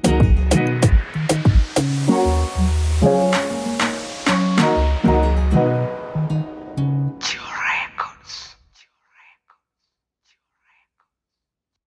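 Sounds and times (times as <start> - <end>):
song music: 0.0 - 7.8
faint whispered vocal syllables: 7.2 - 11.2.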